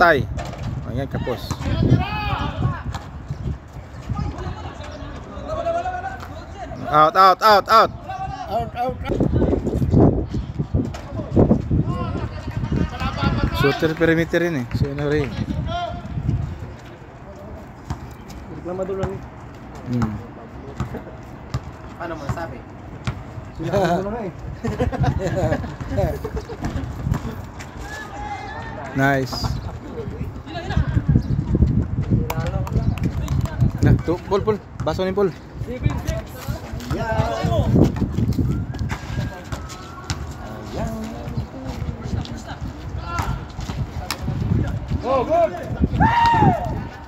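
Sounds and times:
footsteps on concrete court: 9.1s - 47.0s
basketball bouncing on concrete: 20.8s - 23.3s, 35.8s - 42.0s
players shouting: 27.7s - 29.0s, 45.0s - 47.0s.

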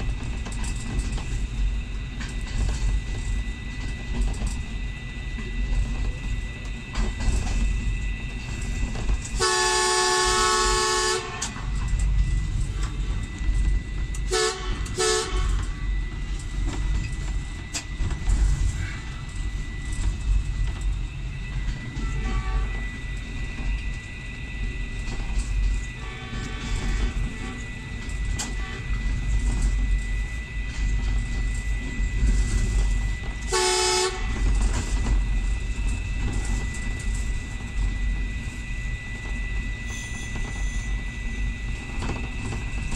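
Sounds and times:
diesel trains rumbling: 0.0s - 42.9s
train horn: 9.3s - 11.6s, 14.2s - 15.9s, 22.0s - 22.8s, 26.0s - 27.5s, 28.4s - 29.0s, 33.4s - 34.5s.

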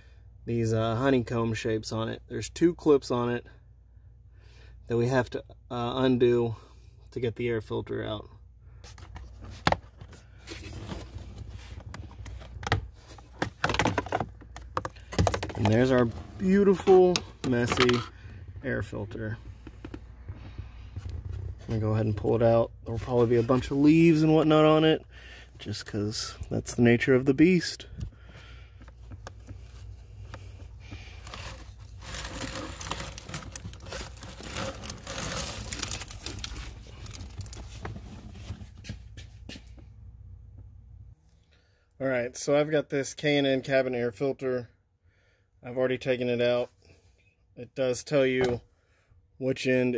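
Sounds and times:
low steady hum: 0.0s - 42.4s
filter rustling against plastic: 8.8s - 24.9s, 25.7s - 39.8s.

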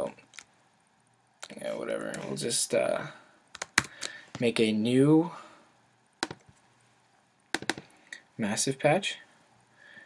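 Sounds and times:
mouse and keyboard clicks: 7.6s - 7.9s.

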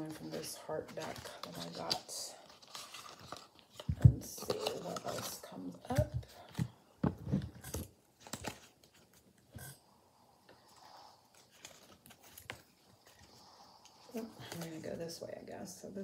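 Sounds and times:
cards being shuffled: 0.2s - 6.7s, 11.2s - 13.4s.

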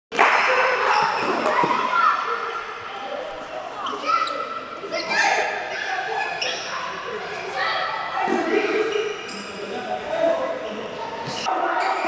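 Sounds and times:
boys shouting indoors: 0.4s - 9.0s.

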